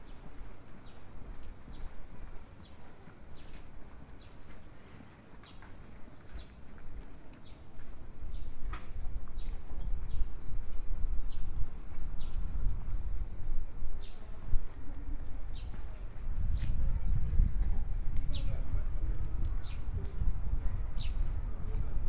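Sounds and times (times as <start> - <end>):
footsteps on pavement: 0.0 - 22.0.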